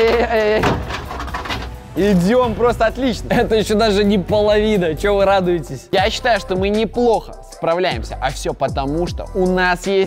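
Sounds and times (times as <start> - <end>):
rattling debris: 0.0 - 3.2.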